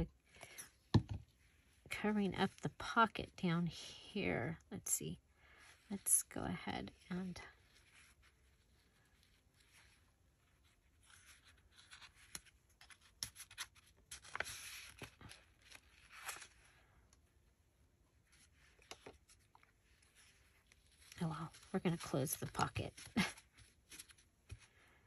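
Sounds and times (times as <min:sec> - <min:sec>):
fabric and paper rustling: 0:07.2 - 0:17.0, 0:18.1 - 0:25.0.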